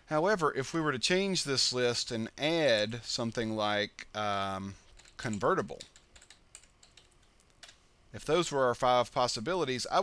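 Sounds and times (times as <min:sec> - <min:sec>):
faint keyboard keystrokes: 0:04.9 - 0:07.8.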